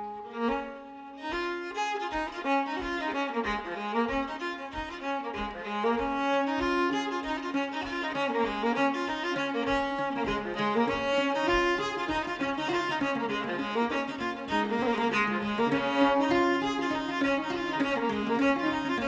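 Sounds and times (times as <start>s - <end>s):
fiddle playing a tune: 0.0s - 19.0s.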